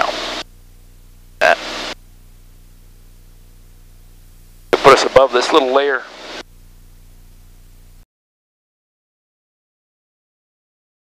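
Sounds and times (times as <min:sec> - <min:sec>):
aircraft engine and cabin hum: 0:00.0 - 0:06.4
person speaking: 0:04.7 - 0:06.1.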